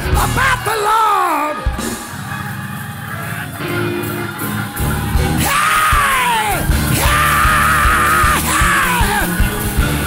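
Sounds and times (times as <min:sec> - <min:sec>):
band music with drums: 0:00.0 - 0:10.0
man yelling high cries: 0:05.4 - 0:09.4.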